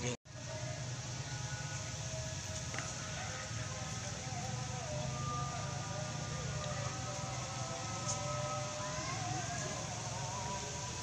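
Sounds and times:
distant road traffic hum: 0.0 - 11.0.

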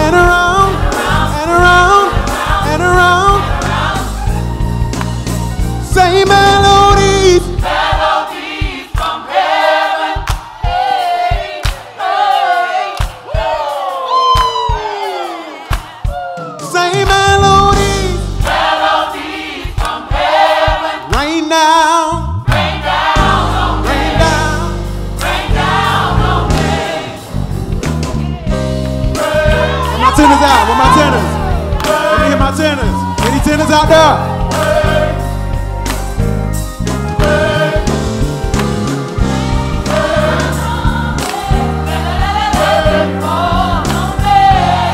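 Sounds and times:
backing music: 0.0 - 44.9
gospel choir singing: 0.0 - 44.9.

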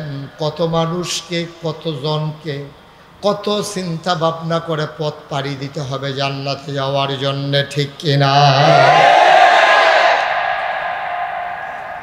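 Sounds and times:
echo of amplified voice: 6.9 - 12.0.

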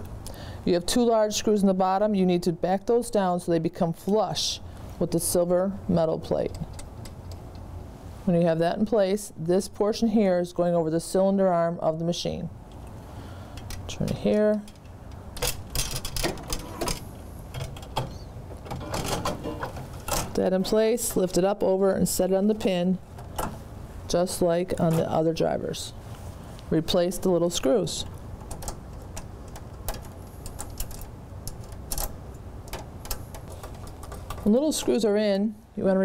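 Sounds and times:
low steady hum: 0.0 - 36.0
small metal clicks: 28.4 - 34.5.

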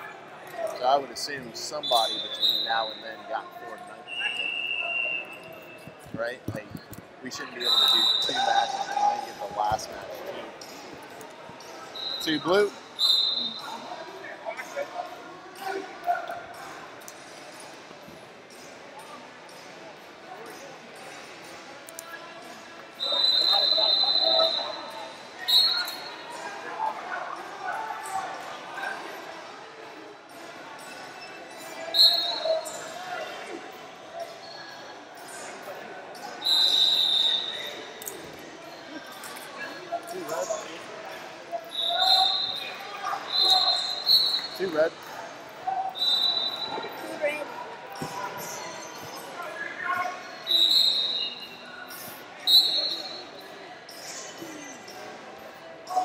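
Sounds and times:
voices and shouts echoing: 0.0 - 56.0
referee whistle blasts: 1.8 - 3.0, 7.6 - 9.0, 12.0 - 13.7, 23.0 - 26.2, 31.9 - 32.7, 36.4 - 37.8, 41.7 - 44.6, 45.9 - 46.9, 50.3 - 53.4.

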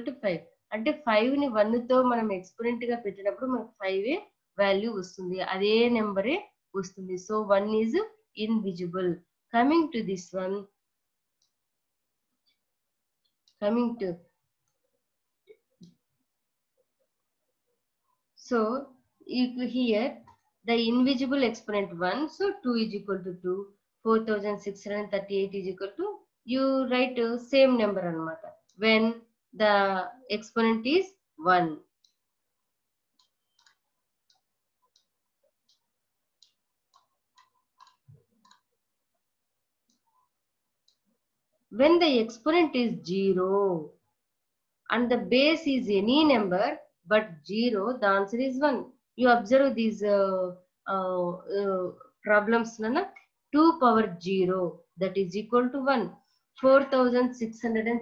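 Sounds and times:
woman speaking: 0.0 - 10.7, 13.6 - 14.2, 18.5 - 31.9, 41.8 - 43.9, 44.9 - 58.0
computer mouse clicking: 31.9 - 32.3, 33.1 - 38.8, 39.8 - 41.1.

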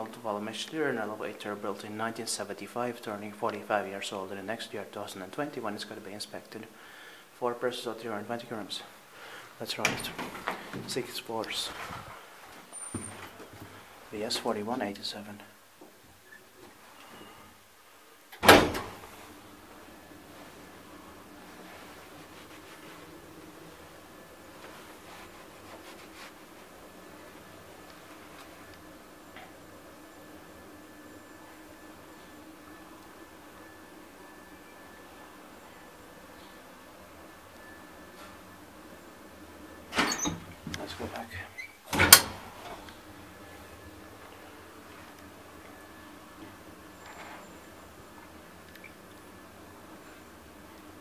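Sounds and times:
faint steady hum: 0.0 - 51.0
elevator mechanism clunk: 18.3 - 19.1, 41.9 - 42.9.

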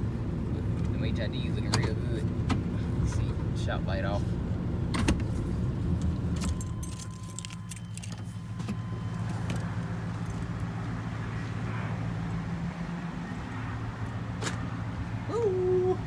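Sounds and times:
keys jangling: 6.4 - 8.3.

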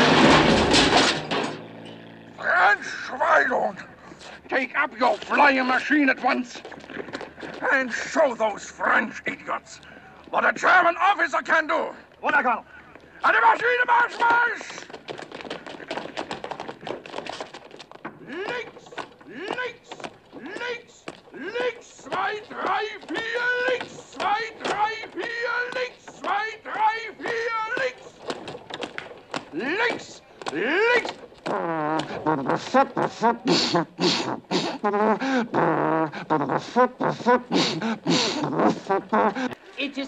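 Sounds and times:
footsteps hurrying on hard ground: 4.2 - 39.7
man shouting marching cadence: 7.6 - 12.6, 13.2 - 14.9, 18.2 - 28.6, 29.4 - 31.2, 32.1 - 33.8.

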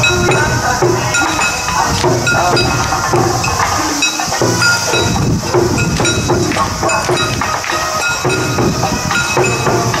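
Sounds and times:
folk song over loudspeaker: 0.0 - 10.0
sharp percussive strokes: 0.0 - 10.0.

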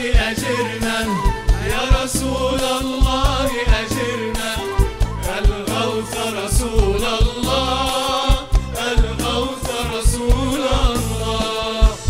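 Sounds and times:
instrumental ensemble: 0.0 - 12.0
low drum beats: 0.0 - 12.0
man singing devotional song: 0.0 - 12.0.

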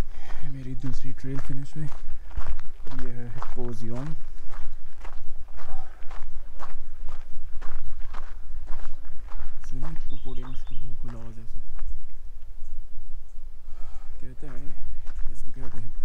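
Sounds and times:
man speaking: 0.0 - 2.0, 2.9 - 4.3, 9.5 - 11.6, 14.0 - 16.0
footsteps crunching on gravel: 0.0 - 13.2, 13.9 - 16.0.

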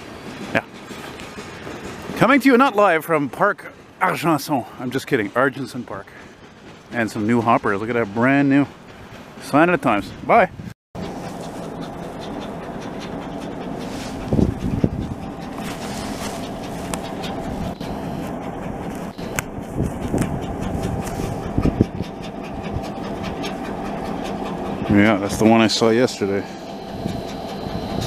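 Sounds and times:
diesel locomotive engine running: 0.0 - 28.0.

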